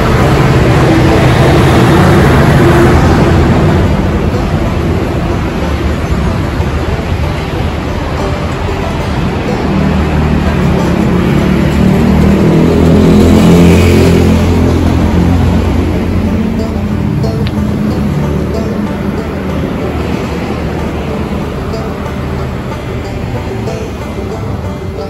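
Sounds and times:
vehicle engines humming: 0.0s - 25.0s.

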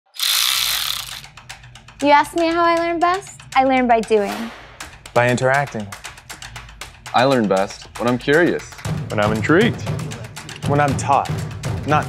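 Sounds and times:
electric ratchet whirring: 0.0s - 1.5s
ratchet clicks: 0.1s - 2.0s.

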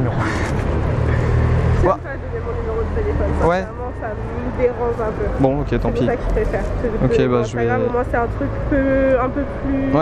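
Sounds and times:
passing vehicle rumble: 0.0s - 10.0s.

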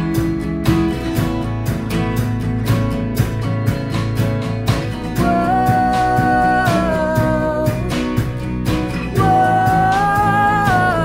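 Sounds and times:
acoustic guitars strumming: 0.0s - 11.0s.

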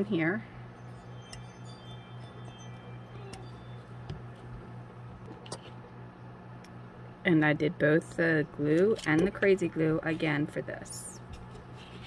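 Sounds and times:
low hum: 0.0s - 8.9s.

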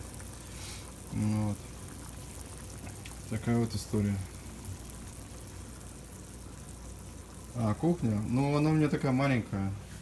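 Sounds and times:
water boiling in a saucepan: 0.0s - 10.0s.

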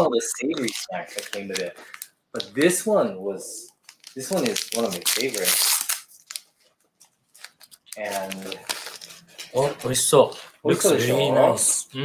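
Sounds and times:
plastic wrapper crinkling: 0.5s - 2.8s, 3.6s - 10.5s.

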